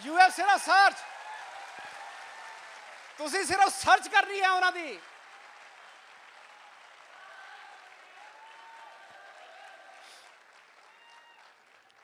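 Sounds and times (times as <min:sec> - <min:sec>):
faint audience applause: 0:00.0 - 0:12.0.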